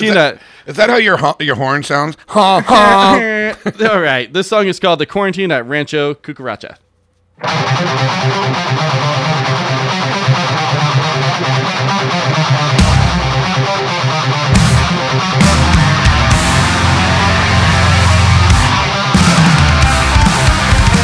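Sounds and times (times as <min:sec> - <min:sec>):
distorted electric guitar: 0:07.4 - 0:21.0
drums: 0:07.4 - 0:21.0
bass: 0:12.5 - 0:13.7, 0:14.4 - 0:21.0.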